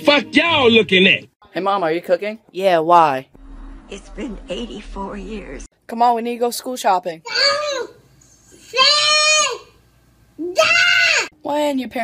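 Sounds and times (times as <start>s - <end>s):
toddler yelling: 7.3s - 8.0s, 8.7s - 9.8s, 10.4s - 11.3s.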